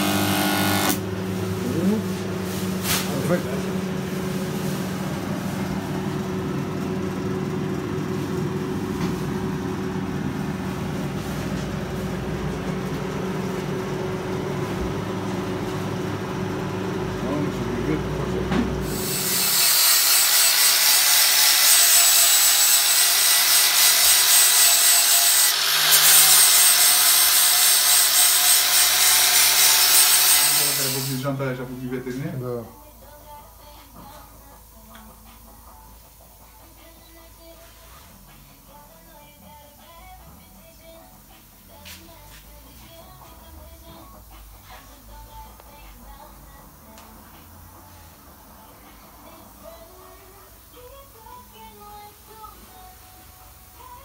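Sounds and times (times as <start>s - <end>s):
angle grinder grinding metal: 0.0s - 1.0s, 18.8s - 31.3s.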